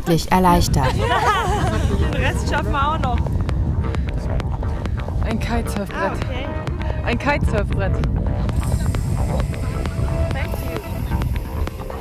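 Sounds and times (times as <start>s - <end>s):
person speaking: 0.0s - 1.0s
heavy low rumble: 0.1s - 12.0s
wind buffeting microphone: 0.3s - 12.0s
music with steady beat: 0.8s - 12.0s.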